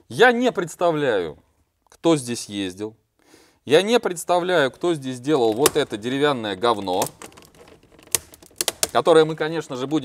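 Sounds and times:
hand clicking and tapping console: 0:05.4 - 0:10.0.

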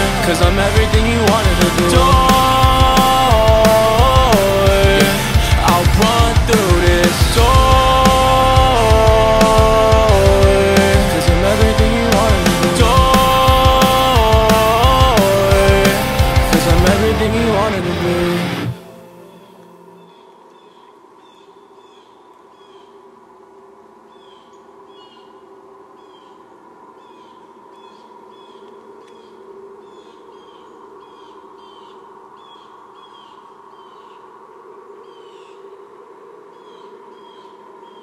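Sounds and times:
loud band music: 0:00.0 - 0:19.6
birds chirping: 0:00.0 - 0:23.2, 0:24.0 - 0:38.0.

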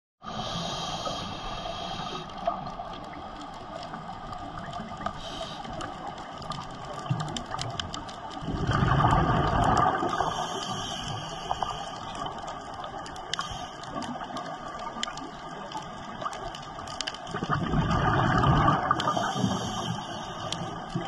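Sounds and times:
underwater hiss: 0:00.2 - 0:03.2, 0:04.8 - 0:06.6, 0:08.5 - 0:15.1, 0:17.3 - 0:21.0
sharp clicks and crackles: 0:01.0 - 0:21.0
rush of bubbling: 0:01.7 - 0:21.0.

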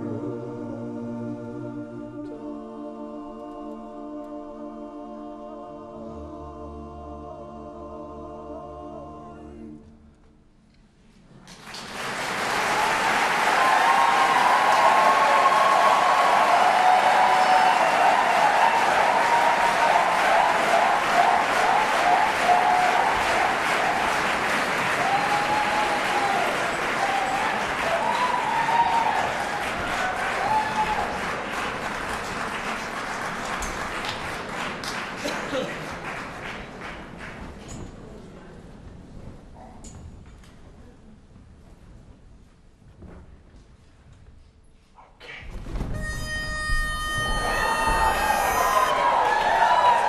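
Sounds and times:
audience applause: 0:11.4 - 0:37.8, 0:46.0 - 0:50.0
crowd calls: 0:12.4 - 0:33.6, 0:46.0 - 0:50.0.

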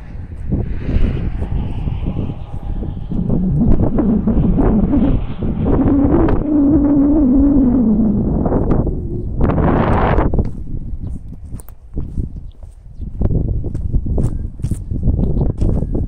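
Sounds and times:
low wavering tone: 0:00.0 - 0:10.4
wind buffeting microphone: 0:00.0 - 0:16.0.

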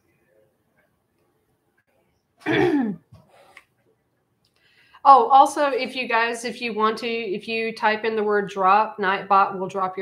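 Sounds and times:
faint small sounds: 0:00.0 - 0:05.0
woman clearing her throat: 0:02.4 - 0:03.1.

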